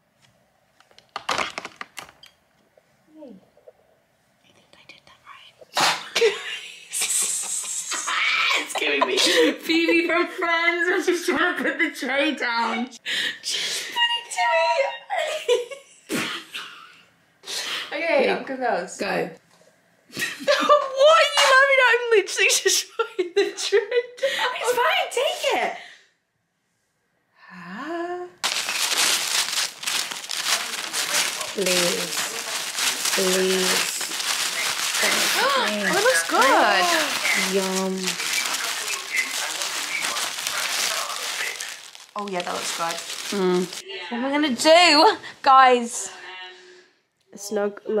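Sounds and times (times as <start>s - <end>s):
paper wrapper crinkling: 0.9s - 2.3s, 28.4s - 43.8s.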